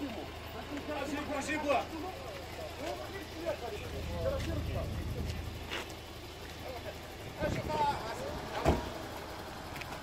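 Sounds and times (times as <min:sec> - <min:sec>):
sharp thump: 0:08.6 - 0:09.0.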